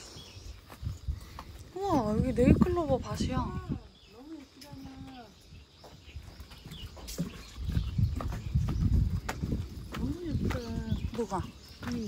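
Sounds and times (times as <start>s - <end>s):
footsteps on wooden boardwalk: 0.0s - 12.0s.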